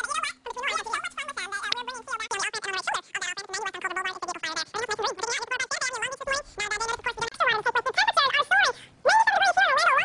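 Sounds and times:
sped-up garbled voice chatter: 0:00.0 - 0:10.0.

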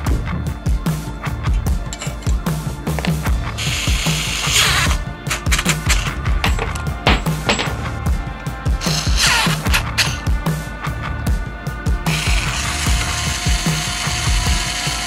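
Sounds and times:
music with steady beat: 0:00.0 - 0:15.0
electric screwdriver whirring: 0:03.0 - 0:06.0, 0:08.8 - 0:10.2, 0:12.1 - 0:15.0.

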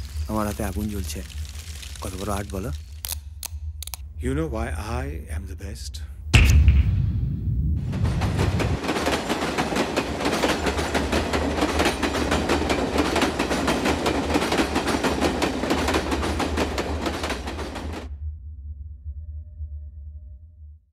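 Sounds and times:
dense rapid clattering knocks: 0:07.8 - 0:18.1.

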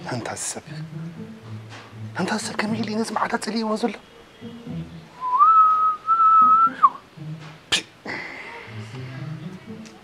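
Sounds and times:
man whistling long note: 0:05.2 - 0:07.0.

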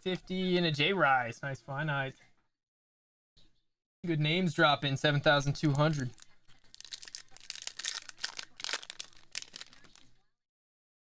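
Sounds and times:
card pack wrapper crinkling: 0:05.6 - 0:10.1.

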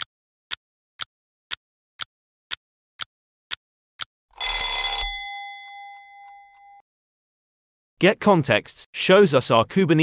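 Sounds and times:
bell ringing: 0:04.4 - 0:06.8.

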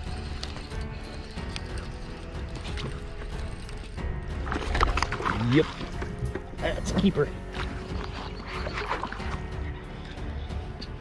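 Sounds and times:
fishing reel cranking: 0:00.0 - 0:03.9
background music: 0:00.0 - 0:11.0
clicks of reel and tackle: 0:00.1 - 0:09.4.

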